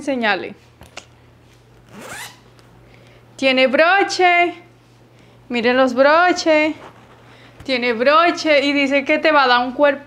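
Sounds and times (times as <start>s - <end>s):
zipper pulled: 1.8s - 2.4s.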